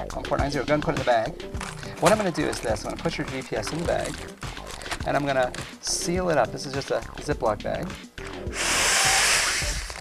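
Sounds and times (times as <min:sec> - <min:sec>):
breath blown into plastic bag: 0:08.5 - 0:10.0.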